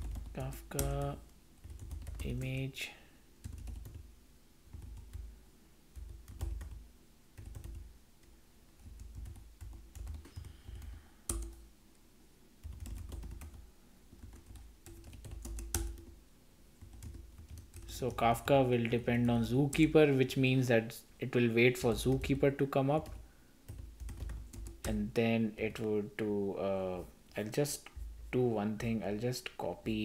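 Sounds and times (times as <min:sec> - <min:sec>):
typing on computer keyboard: 0:00.0 - 0:02.6, 0:03.4 - 0:04.0, 0:06.0 - 0:06.8, 0:07.4 - 0:07.8, 0:08.8 - 0:11.6, 0:12.6 - 0:16.1, 0:16.8 - 0:18.0, 0:23.0 - 0:25.0.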